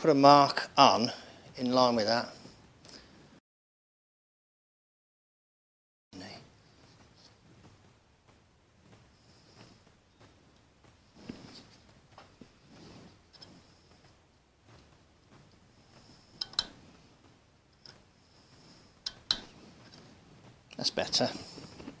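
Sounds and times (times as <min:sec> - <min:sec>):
faint rustles and soft knocks: 0:06.2 - 0:22.0
sharp clicks: 0:19.0 - 0:20.0.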